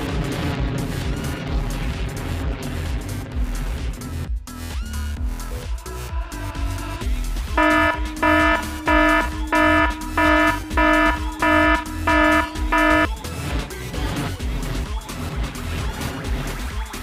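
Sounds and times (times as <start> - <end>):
music with bass beat: 6.4 - 13.1
buzzing electronic alarm beeps: 7.6 - 13.1.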